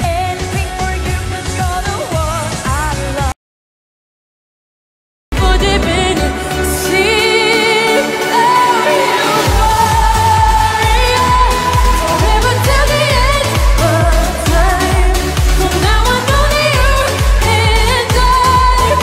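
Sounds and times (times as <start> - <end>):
woman singing dance-pop song: 0.0 - 3.4, 5.3 - 19.0
kick-drum and bass beat: 5.3 - 6.8, 9.5 - 19.0
synths: 5.3 - 19.0.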